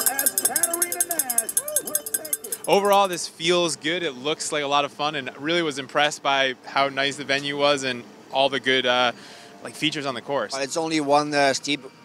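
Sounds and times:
spectators shouting and cheering: 0:00.0 - 0:02.1
cowbell shaken rapidly: 0:00.0 - 0:03.2.

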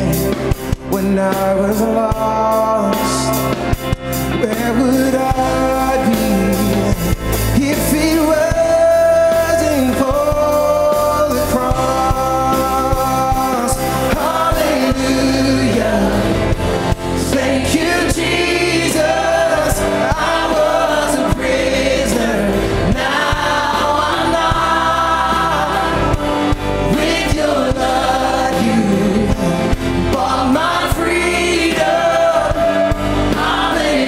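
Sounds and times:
band playing: 0:00.0 - 0:34.0
drums and cymbals: 0:00.0 - 0:34.0
singers in harmony: 0:04.3 - 0:34.0.

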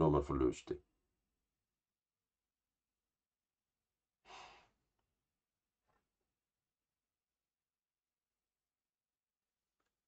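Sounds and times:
person exhaling close to microphone: 0:04.2 - 0:04.8.

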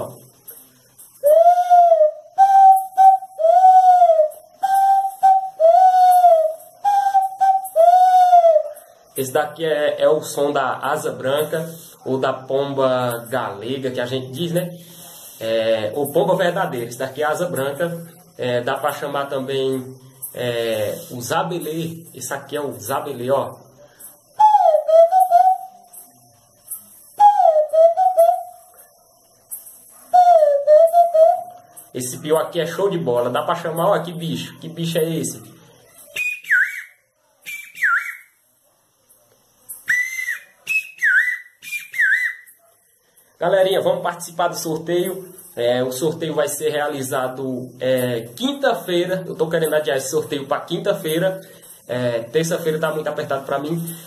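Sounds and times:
wooden bird call whistling: 0:00.6 - 0:09.3, 0:24.2 - 0:32.0, 0:35.9 - 0:38.4, 0:39.7 - 0:42.7
wooden bird call cooing: 0:24.4 - 0:26.2.

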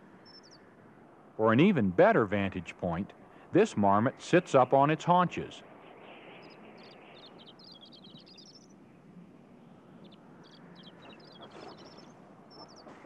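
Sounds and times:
faint outdoor hiss: 0:00.0 - 0:13.0
small bird chirping: 0:00.2 - 0:00.6, 0:05.9 - 0:08.8, 0:09.8 - 0:13.0.

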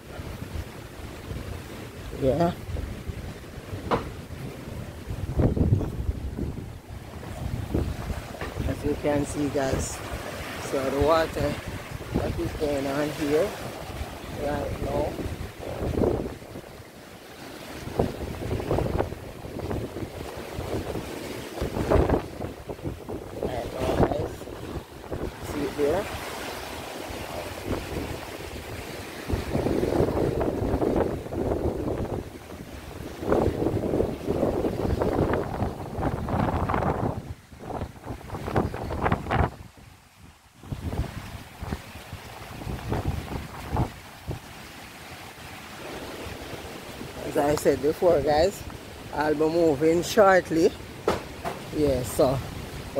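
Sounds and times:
gusty wind buffeting microphone: 0:00.0 - 0:52.9
rough surf washing ashore: 0:00.0 - 0:52.9.

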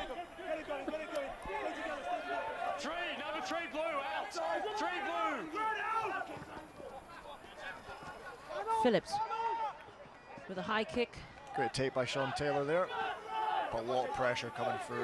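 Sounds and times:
men shouting: 0:00.0 - 0:09.7, 0:12.6 - 0:15.0.

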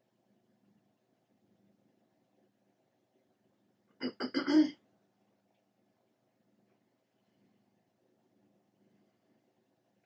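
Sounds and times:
woman clearing her throat: 0:04.0 - 0:04.8.

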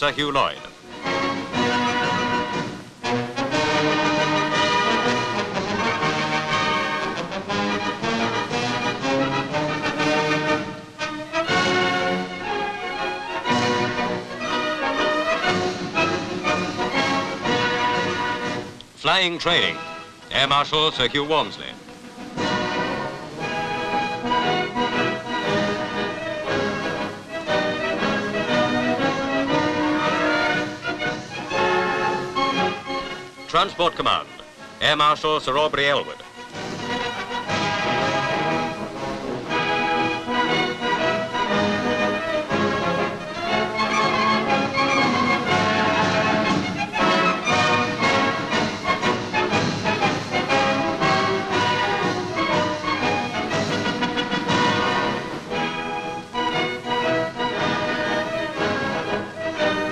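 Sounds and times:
orchestral band music: 0:00.0 - 0:59.9.

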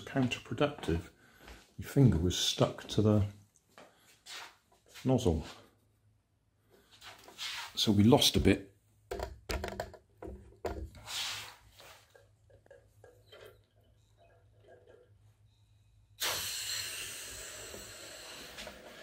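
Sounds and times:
air hissing out of balloon: 0:11.0 - 0:11.6, 0:16.2 - 0:19.0
person breathing into balloon: 0:15.6 - 0:19.0.

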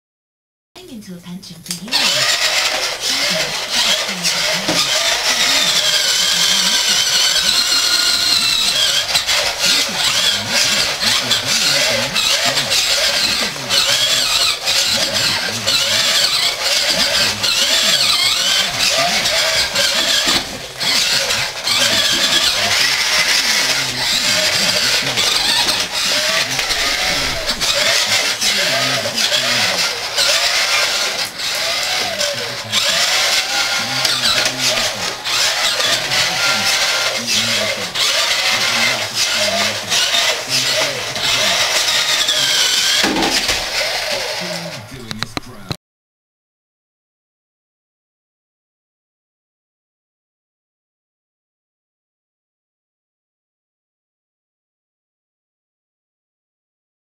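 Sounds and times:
toy truck electric motor whining: 0:01.7 - 0:45.6.

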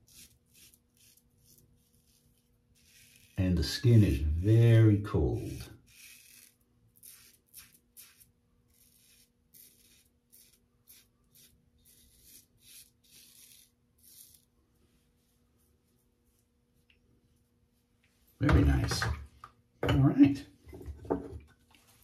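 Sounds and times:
razor scraping stubble: 0:00.0 - 0:14.5.

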